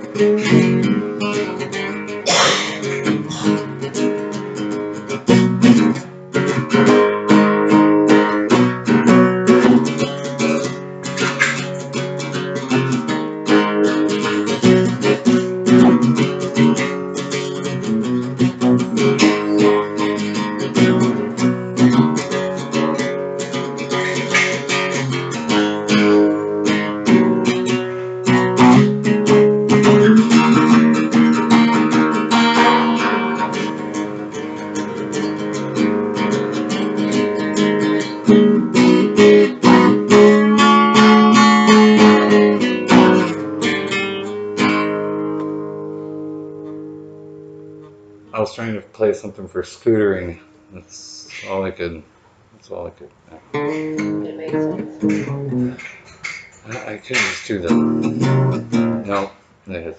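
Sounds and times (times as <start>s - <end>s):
acoustic guitar strumming: 0.0s - 51.7s, 53.3s - 59.8s.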